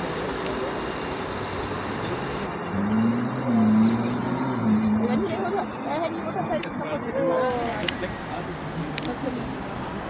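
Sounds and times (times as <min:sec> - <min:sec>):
distant city traffic: 0:00.0 - 0:10.0
wind: 0:00.0 - 0:10.0.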